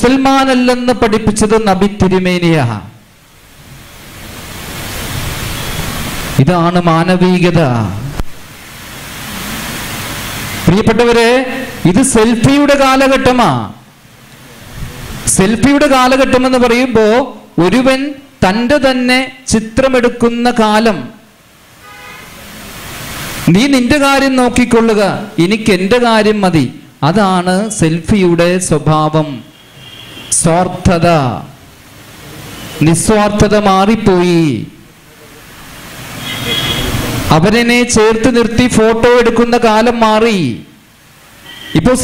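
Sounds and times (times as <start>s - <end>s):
man's amplified speech: 0.0s - 3.0s, 6.4s - 8.2s, 10.6s - 13.9s, 15.2s - 21.3s, 23.5s - 29.5s, 30.3s - 31.6s, 32.8s - 35.4s, 37.3s - 40.8s, 41.8s - 42.0s
steady hiss: 0.0s - 42.0s
rushing noise: 3.0s - 17.1s, 21.2s - 25.5s, 29.0s - 39.6s.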